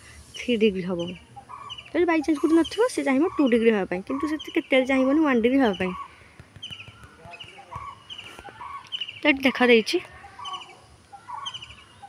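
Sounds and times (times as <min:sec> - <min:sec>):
bird chirping trills: 0:00.4 - 0:12.0.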